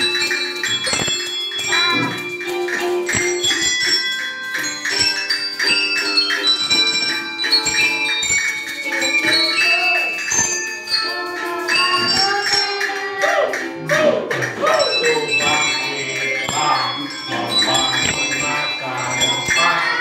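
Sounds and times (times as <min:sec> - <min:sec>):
handbells playing a tune: 0:00.0 - 0:20.0.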